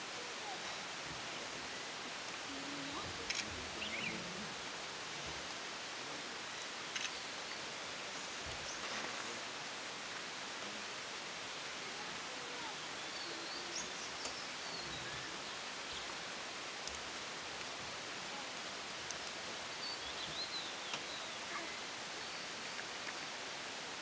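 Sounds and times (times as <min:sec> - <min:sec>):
steady forest hiss: 0:00.0 - 0:24.0.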